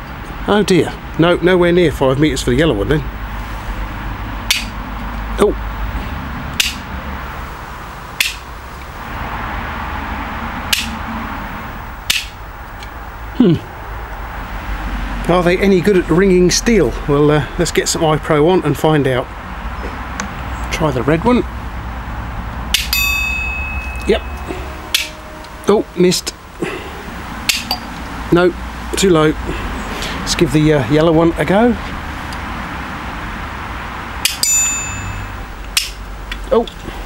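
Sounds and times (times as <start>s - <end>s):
background hiss: 6.8s - 37.0s
steel plate ringing: 22.7s - 28.3s, 34.2s - 35.9s.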